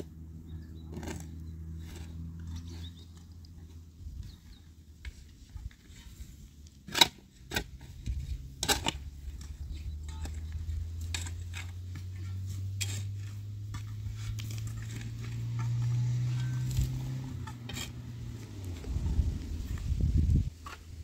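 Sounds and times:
shovel digging stony earth: 0.0 - 3.3, 4.2 - 21.0
soil and pebbles pattering: 0.0 - 21.0.

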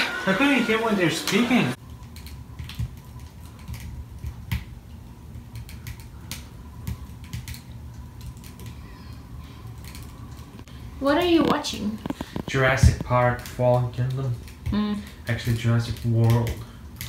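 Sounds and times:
wood fire crackling: 1.2 - 17.0.

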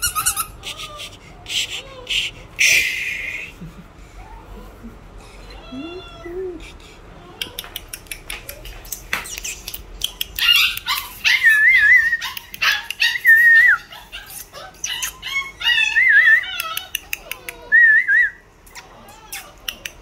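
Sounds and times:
puppy whining and yipping: 0.0 - 2.4, 8.6 - 17.9, 18.7 - 20.0.

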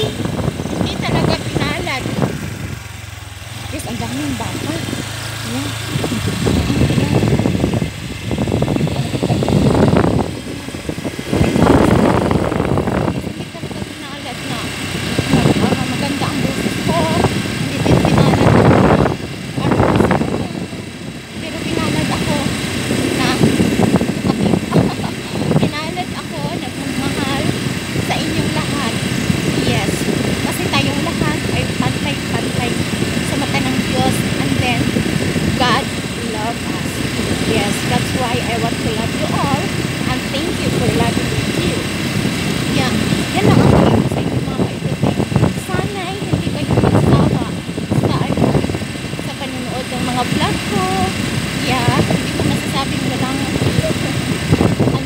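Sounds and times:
woman talking: 0.0 - 2.4, 3.6 - 7.6, 8.4 - 41.9, 42.6 - 55.0
moving vehicle running noise: 0.0 - 55.0.

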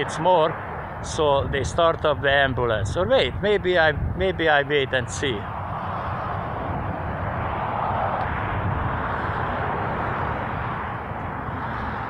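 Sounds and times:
steady low rumble: 0.0 - 12.0
vehicle passing: 0.0 - 12.0.

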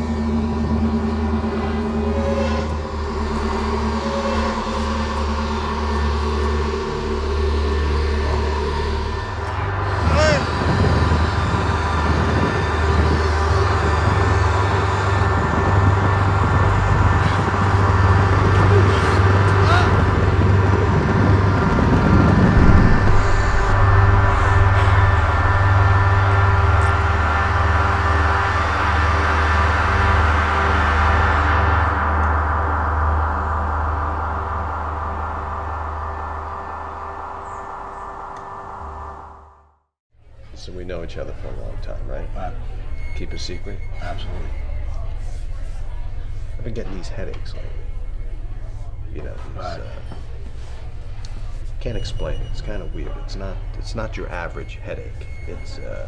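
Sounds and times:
low rumbling drone: 0.0 - 56.0
steady held tones: 0.0 - 56.0
man groaning and crying out: 19.6 - 20.1.

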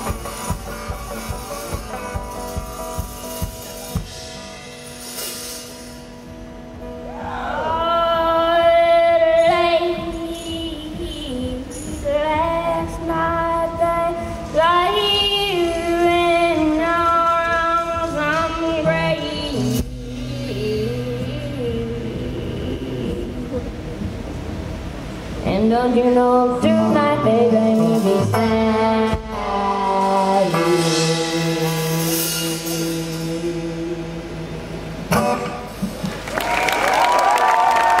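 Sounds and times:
acoustic guitar chords: 0.0 - 36.3
audience cheering and whistling: 36.0 - 38.0.

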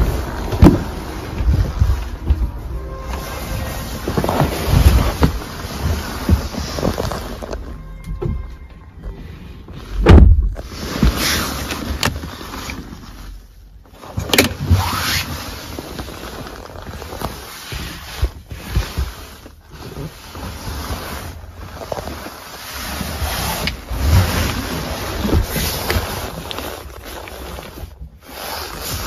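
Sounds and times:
soft bumps: 0.0 - 9.2
rustling handling noise: 0.0 - 29.0.

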